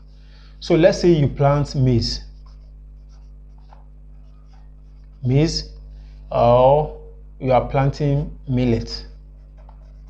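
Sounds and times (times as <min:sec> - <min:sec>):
steady low hum: 0:00.0 - 0:10.0
marker scratching on whiteboard: 0:02.2 - 0:05.3, 0:09.0 - 0:10.0.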